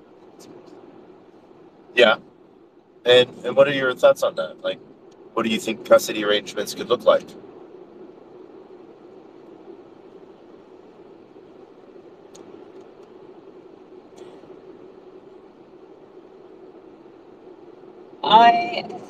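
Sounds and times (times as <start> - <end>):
low hum: 0.0 - 19.0
microphone hiss: 0.0 - 19.0
faint clicks: 12.2 - 13.2.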